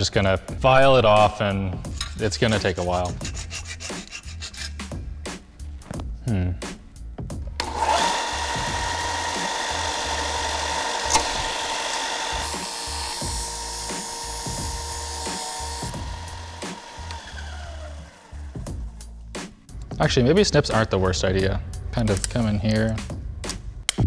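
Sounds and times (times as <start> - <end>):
metal grinding on sander belt: 7.6 - 19.2
belt sander whining: 7.6 - 19.5.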